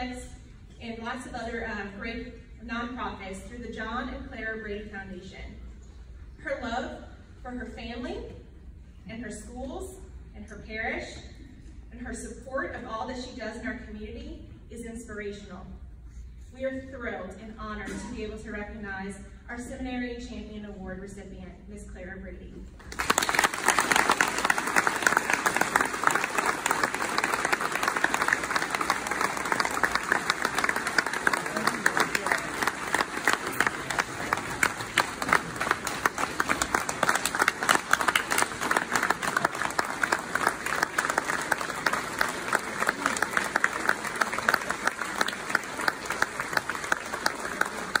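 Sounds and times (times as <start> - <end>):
audience applauding: 22.8 - 48.0.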